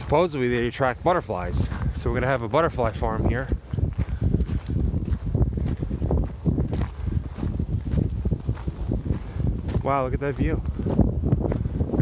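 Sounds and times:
footsteps on gravel: 0:00.0 - 0:12.0
wind buffeting microphone: 0:00.0 - 0:12.0.

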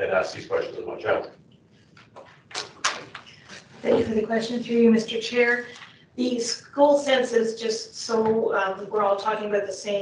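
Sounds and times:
person speaking: 0:00.0 - 0:01.3, 0:02.5 - 0:10.0.

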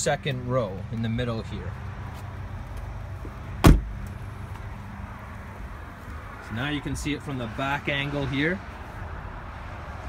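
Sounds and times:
vehicle door shutting: 0:03.6 - 0:04.1.

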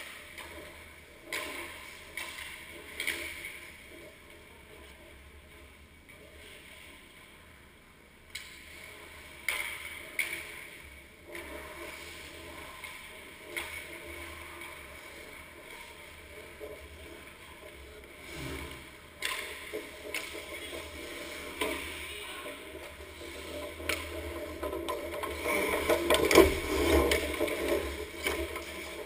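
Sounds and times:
hockey sticks and puck clacking: 0:00.0 - 0:05.2, 0:08.3 - 0:29.0
skate blades scraping ice: 0:08.4 - 0:29.0.

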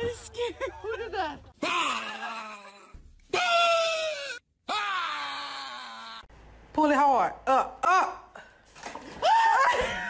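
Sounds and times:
woman screaming in fright: 0:09.2 - 0:10.0.

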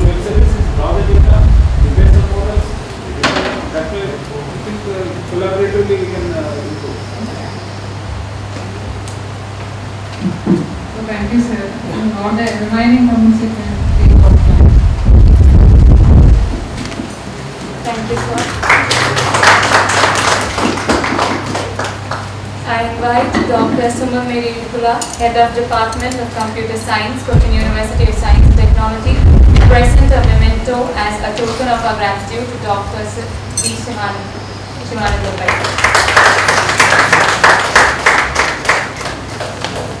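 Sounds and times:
audience clapping: 0:17.9 - 0:22.4, 0:35.1 - 0:40.0.

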